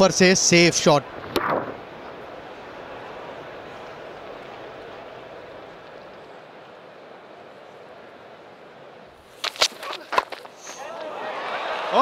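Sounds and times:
low background noise: 0:00.0 - 0:12.0
burst of noise: 0:01.1 - 0:02.3.

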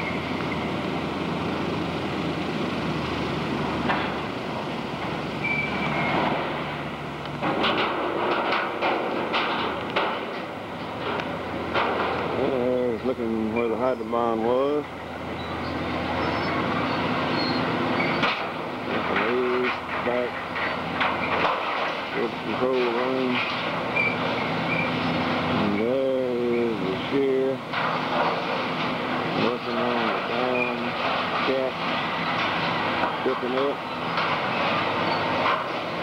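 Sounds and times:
excavator machine noise: 0:00.0 - 0:36.0.

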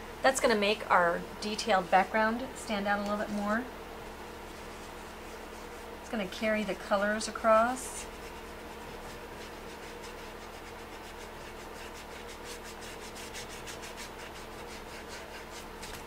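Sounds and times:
brush rubbing paint on tray: 0:04.3 - 0:16.0.

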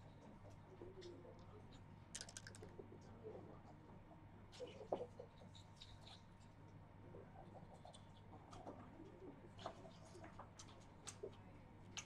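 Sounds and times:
dice clicking on board: 0:02.2 - 0:02.6
dice rattling in cup: 0:02.2 - 0:02.6.

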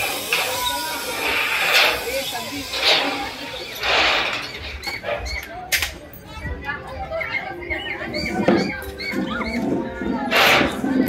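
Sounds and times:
steady hiss: 0:00.0 - 0:04.8
indistinct voices outdoors: 0:00.0 - 0:11.0.

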